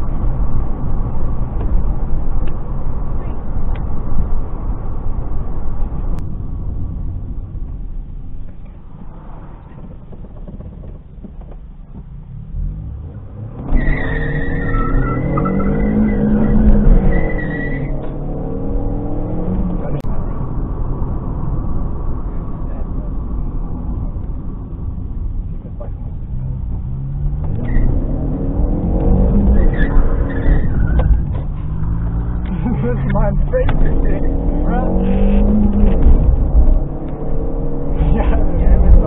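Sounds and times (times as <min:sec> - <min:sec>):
car engine revving: 0:00.0 - 0:39.0
car road noise: 0:00.0 - 0:39.0.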